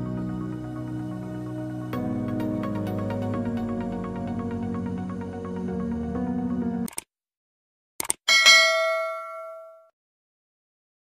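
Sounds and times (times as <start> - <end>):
bell ding: 8.3 - 9.9.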